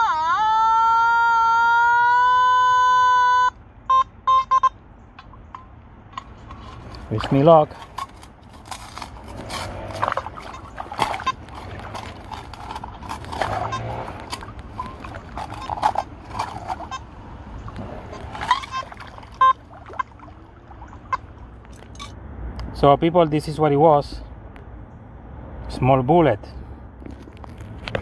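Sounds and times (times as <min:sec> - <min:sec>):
brief tones: 0:02.8 - 0:04.8, 0:18.4 - 0:20.1
river water splashing and sloshing: 0:05.2 - 0:22.7
gravel scraping and knocking: 0:06.2 - 0:17.1, 0:27.0 - 0:28.0.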